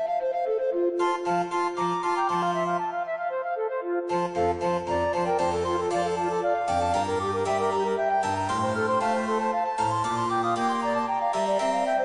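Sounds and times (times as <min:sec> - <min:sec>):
baroque chamber music: 0:00.0 - 0:12.0.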